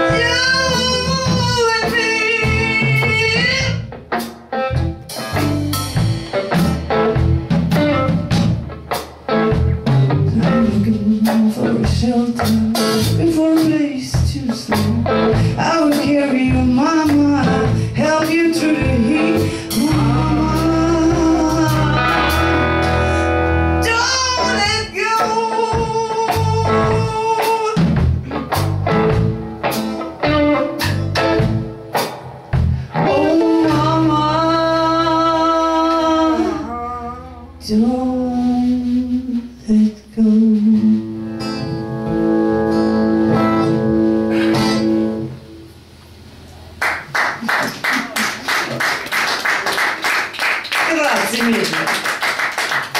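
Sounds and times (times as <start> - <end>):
woman singing: 0.0 - 3.8, 10.3 - 22.4, 23.8 - 27.8, 33.0 - 41.2
bass: 0.0 - 47.1
electric guitar chord ringing: 18.8 - 23.8, 41.3 - 45.7
audience applauding: 46.8 - 52.9.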